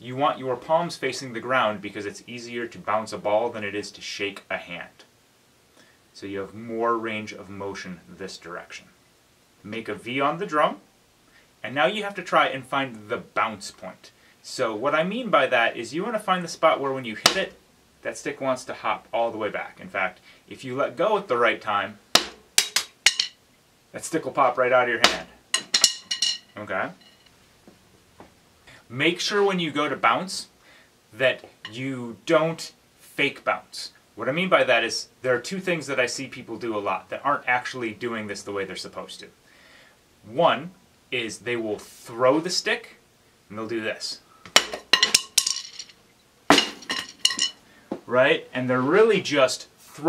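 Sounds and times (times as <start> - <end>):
drumstick clattering: 22.1 - 23.4, 25.0 - 27.3, 44.5 - 47.6
drumstick striking practice pad: 22.1 - 23.4, 25.0 - 26.4, 44.5 - 45.8, 46.5 - 47.5.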